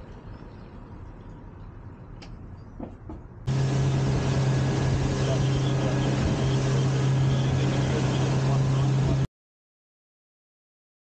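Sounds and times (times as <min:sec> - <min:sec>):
rushing wind: 0:02.8 - 0:09.3
outboard engine running: 0:03.5 - 0:09.3
rushing water: 0:03.5 - 0:09.3.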